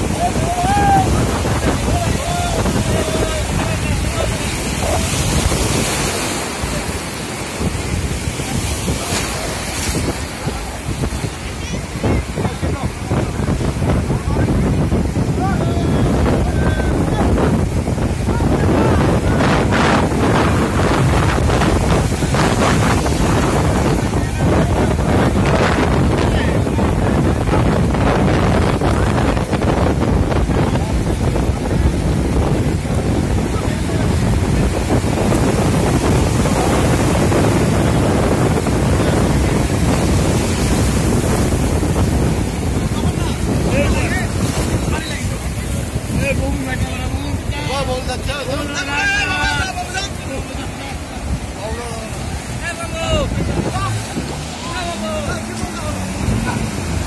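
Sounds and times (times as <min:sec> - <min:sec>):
surf breaking: 0:00.0 - 0:57.0
wind buffeting microphone: 0:00.0 - 0:57.0.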